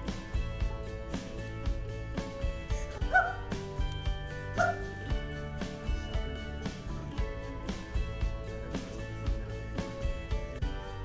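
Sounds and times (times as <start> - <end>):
background music with steady beat: 0.0 - 11.0
short high yelps: 3.1 - 3.4, 4.6 - 4.8.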